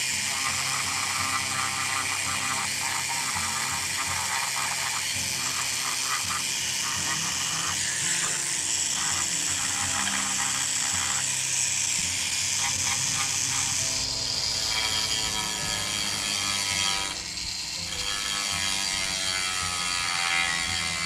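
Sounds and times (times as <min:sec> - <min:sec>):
rotary tool grinding wood: 0:00.0 - 0:21.0.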